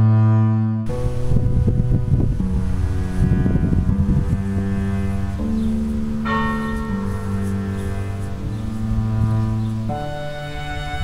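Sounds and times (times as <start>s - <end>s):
church bells ringing: 0.9s - 11.0s.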